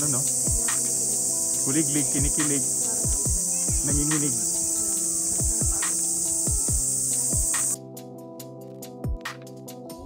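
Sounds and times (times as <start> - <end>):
cicadas chorus: 0.0 - 7.8
background music with drum beats: 0.0 - 10.0.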